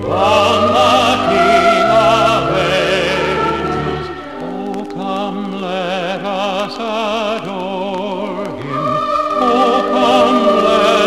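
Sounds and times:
choir singing with orchestra: 0.0s - 11.0s.

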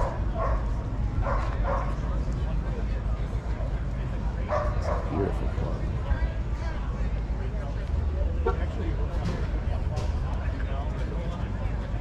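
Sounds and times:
crowd voices: 0.0s - 12.0s.

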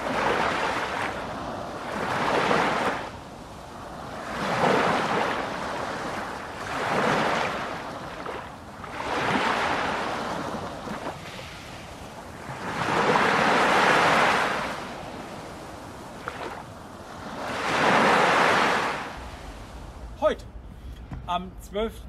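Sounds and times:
ocean waves washing in: 0.0s - 21.9s.

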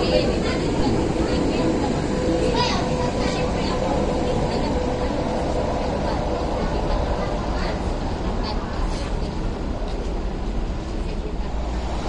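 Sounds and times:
light rail train humming and whining: 0.0s - 12.0s
voices on platform: 0.0s - 12.0s.

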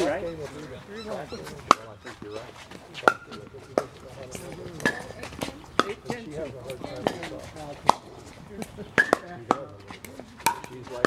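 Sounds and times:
quiet voices: 0.0s - 11.0s
paddles hitting plastic ball: 3.0s - 11.0s.

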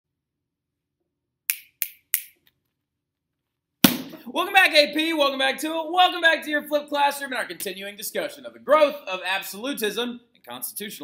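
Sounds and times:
finger snaps: 1.5s - 2.4s
sharp smack: 3.8s - 4.2s.

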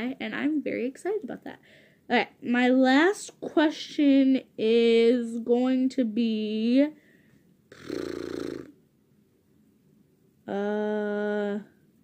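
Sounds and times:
person humming raspily: 7.7s - 8.7s.

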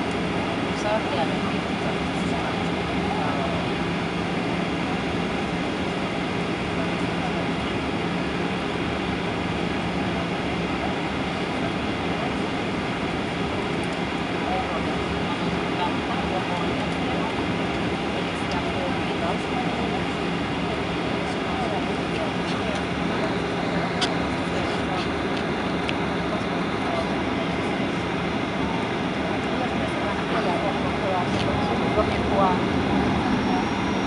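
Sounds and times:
jet engines idling: 0.0s - 34.0s
low hum: 21.6s - 34.0s.

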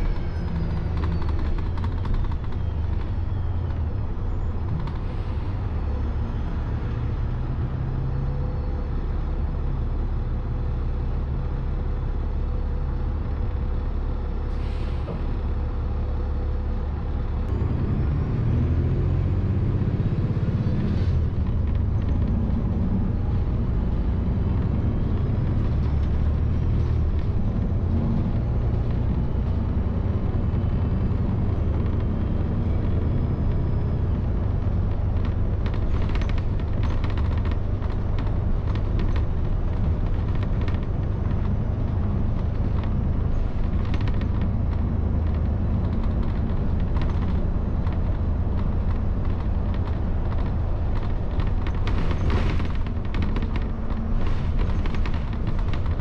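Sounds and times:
bus engine and road rumble: 0.0s - 56.0s.

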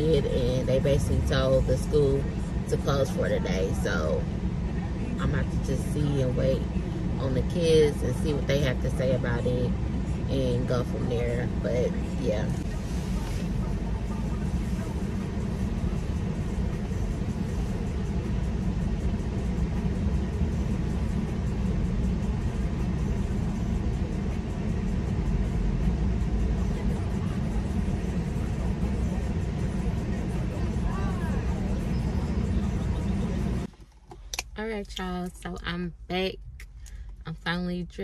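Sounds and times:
car engine idling: 0.0s - 38.0s
car heater running: 0.0s - 38.0s.

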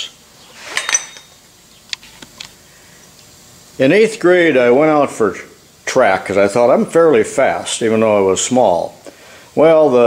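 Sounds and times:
glass and metal clink: 0.7s - 1.4s.

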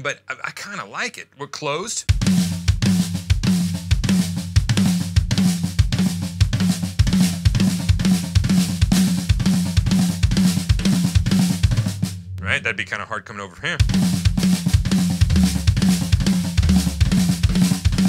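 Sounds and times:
acoustic drum kit playing: 2.1s - 13.0s, 13.6s - 18.0s.

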